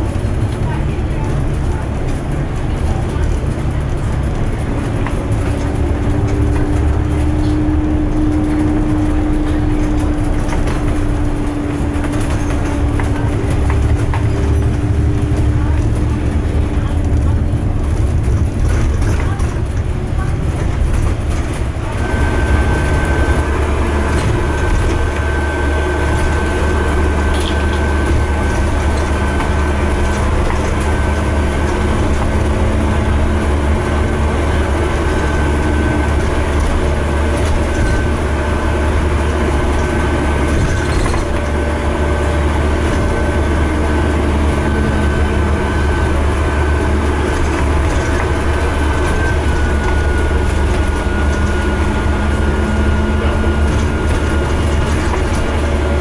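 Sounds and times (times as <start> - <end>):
bus engine drone: 0.0 - 56.0
road and body noise: 0.0 - 56.0.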